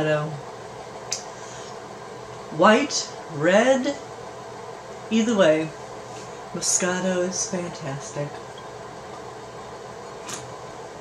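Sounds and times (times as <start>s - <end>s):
indoor fan hum and hiss: 0.0s - 11.0s.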